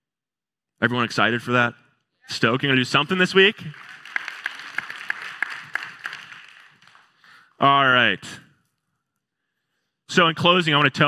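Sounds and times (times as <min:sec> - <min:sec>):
congregation applauding: 0:02.5 - 0:07.6.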